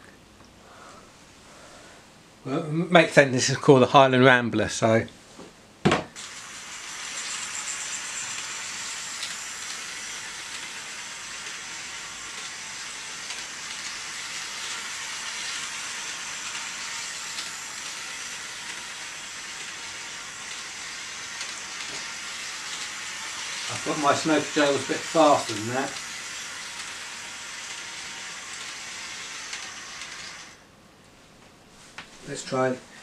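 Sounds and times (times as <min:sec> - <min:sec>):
model train whirring on rails: 0:06.2 - 0:30.6.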